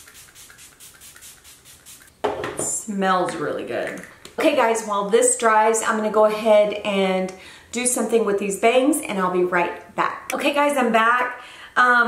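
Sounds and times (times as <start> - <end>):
spray bottle misting: 0.0 - 2.1.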